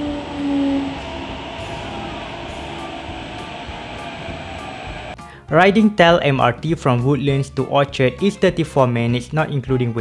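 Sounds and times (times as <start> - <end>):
faint steady tones: 0.0 - 5.2
train running in tunnel: 0.0 - 5.2.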